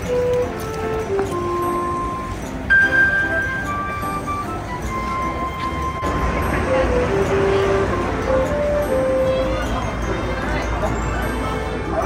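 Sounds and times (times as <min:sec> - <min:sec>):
background music melody: 0:00.0 - 0:12.0
passers-by's voices: 0:00.0 - 0:12.0
traffic rumble: 0:00.0 - 0:12.0.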